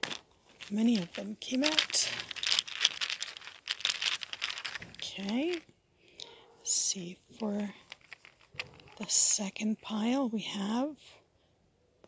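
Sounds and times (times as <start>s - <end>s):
fabric pouch rustling: 0.0s - 5.6s, 7.6s - 9.1s
small pieces scraping and clicking: 0.0s - 5.7s, 7.4s - 9.2s.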